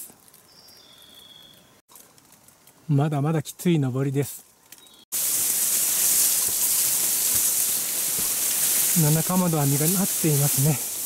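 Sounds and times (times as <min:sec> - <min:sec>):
high-pitched hiss: 0:04.8 - 0:11.0.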